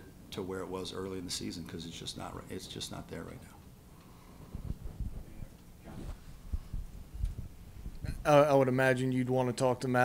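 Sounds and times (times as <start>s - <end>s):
soft low thumps: 4.5s - 5.5s, 6.1s - 8.3s.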